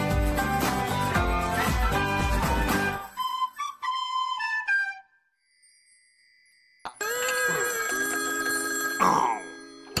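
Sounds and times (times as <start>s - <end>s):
cartoon telephone ringing: 6.9s - 10.0s.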